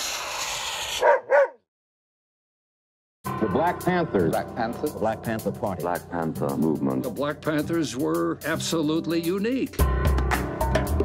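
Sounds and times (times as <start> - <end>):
dog barking: 1.0 - 1.6.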